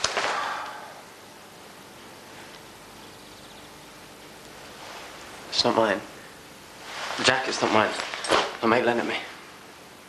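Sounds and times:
fabric jacket swishing: 6.8s - 8.6s.

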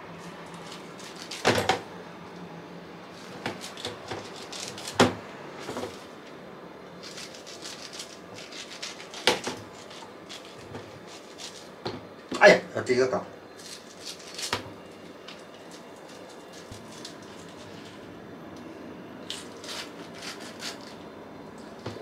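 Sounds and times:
knife cutting pineapple: 19.3s - 20.9s.

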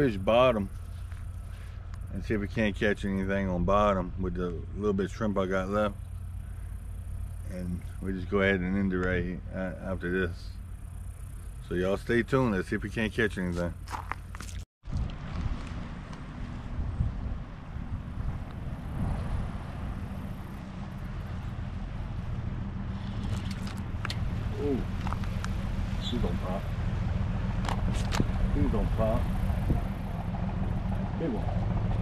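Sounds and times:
boat engine humming: 0.0s - 14.5s, 15.1s - 32.0s.

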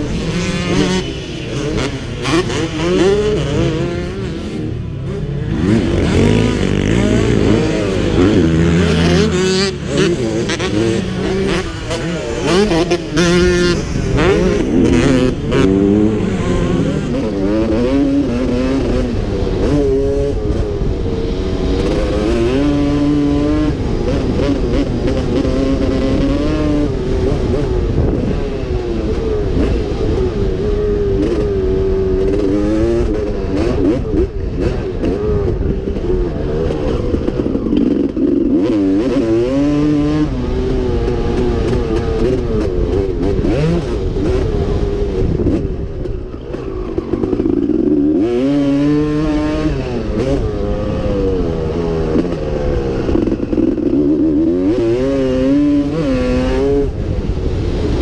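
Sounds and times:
two-stroke motorcycle engine revving: 0.0s - 58.0s.

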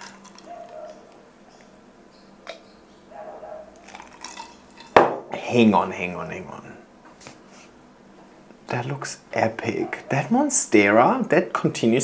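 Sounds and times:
person gulping a drink: 3.8s - 5.0s.

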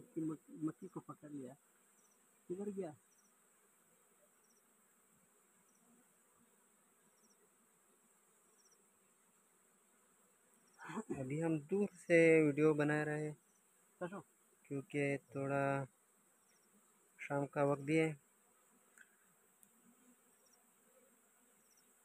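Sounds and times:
honeybees buzzing: 0.0s - 22.0s.

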